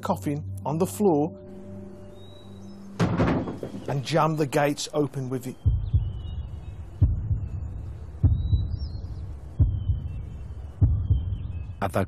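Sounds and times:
deep low thuds: 0:03.0 - 0:04.3, 0:05.6 - 0:11.9.

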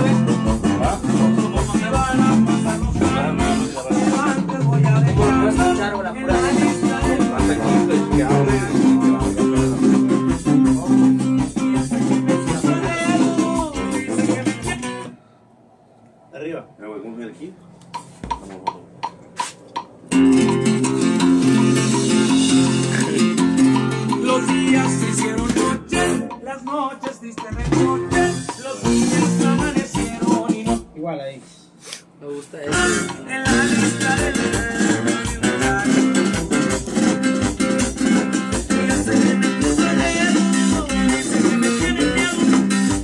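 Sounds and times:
band with plucked guitars and bass: 0:00.0 - 0:15.1, 0:20.1 - 0:30.9, 0:32.6 - 0:43.0.

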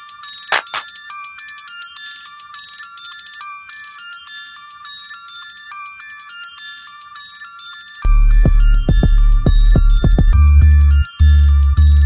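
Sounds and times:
bell-like synth melody: 0:00.9 - 0:12.0.

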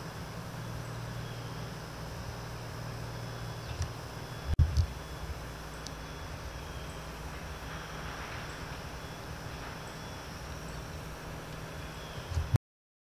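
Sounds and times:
faint hiss: 0:00.0 - 0:12.5
steady low rumble: 0:00.0 - 0:12.6.

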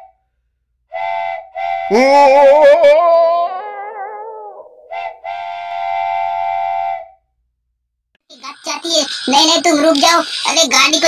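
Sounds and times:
toy train electronic whistle: 0:00.9 - 0:02.1, 0:05.0 - 0:07.2.

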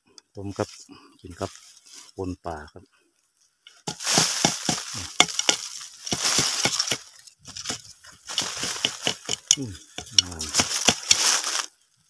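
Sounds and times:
dry leaves and twigs crunching: 0:00.7 - 0:12.0.

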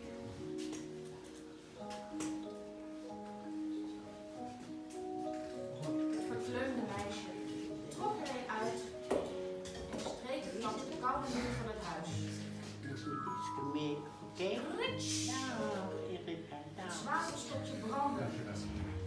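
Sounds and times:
electronic keyboard slow melody: 0:00.0 - 0:19.0.

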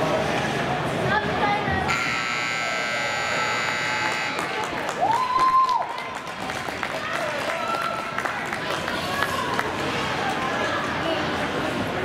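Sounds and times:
spectators' voices: 0:00.0 - 0:12.0
scoreboard buzzer: 0:01.9 - 0:04.6.

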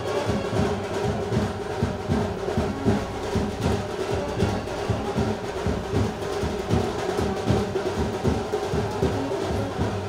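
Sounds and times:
driving drum beat: 0:00.0 - 0:10.0.

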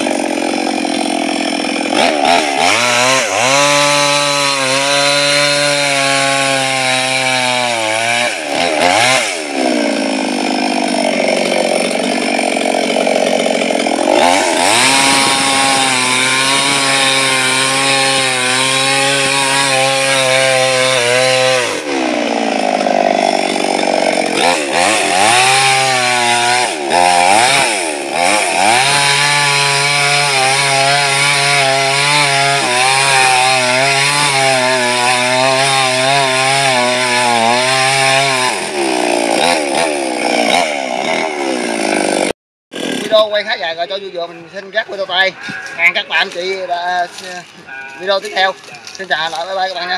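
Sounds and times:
chainsaw cutting wood: 0:00.0 - 0:43.8, 0:45.5 - 0:49.9.

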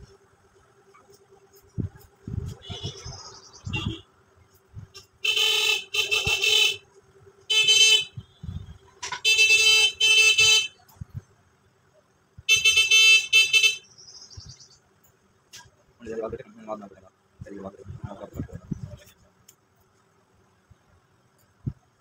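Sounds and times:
horn honking short blasts: 0:02.5 - 0:04.1, 0:05.0 - 0:06.8, 0:07.5 - 0:11.0, 0:12.5 - 0:13.9.

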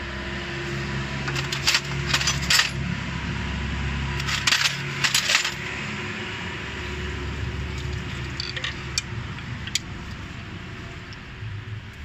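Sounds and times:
metal tools clinking: 0:01.2 - 0:02.8, 0:04.2 - 0:05.7, 0:07.7 - 0:09.9.

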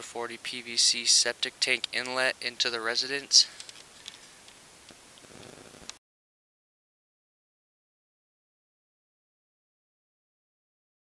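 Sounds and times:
low hiss: 0:00.0 - 0:06.0
faint clicks: 0:03.5 - 0:06.0.

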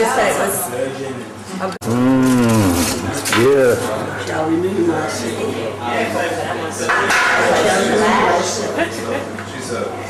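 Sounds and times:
low voice mooing ooh: 0:01.8 - 0:03.1.

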